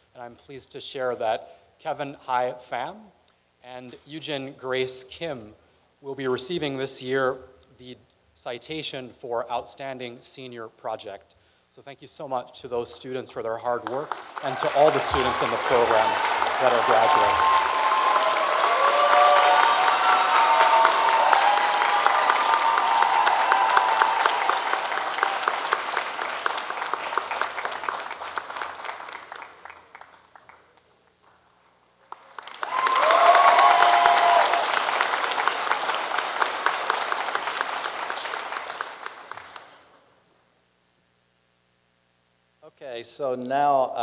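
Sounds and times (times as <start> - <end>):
audience applause: 13.8 - 30.9, 32.1 - 39.8
cheering voices: 14.4 - 26.2, 32.6 - 34.8.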